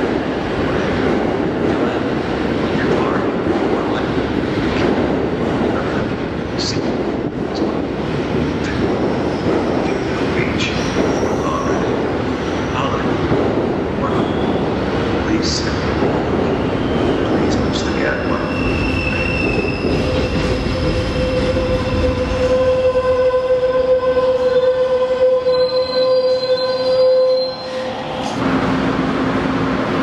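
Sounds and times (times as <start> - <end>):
train cars rumbling past: 0.0 - 30.0
high-pitched wheel squeal: 25.4 - 28.2.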